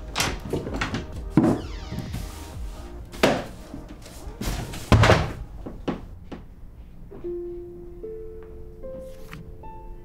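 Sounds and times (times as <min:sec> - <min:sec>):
broom knocking on floor: 0:00.5 - 0:06.0.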